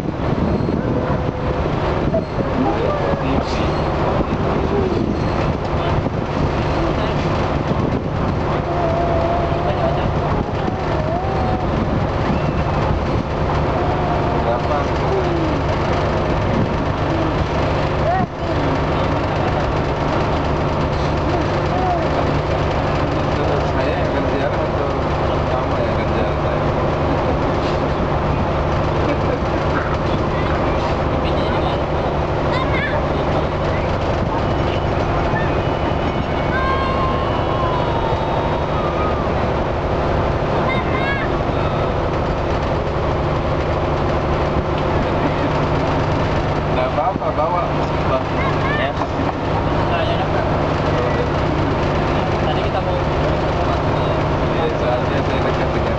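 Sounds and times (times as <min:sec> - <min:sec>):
ferry engine running: 0:00.0 - 0:55.9
people's voices: 0:00.0 - 0:55.9.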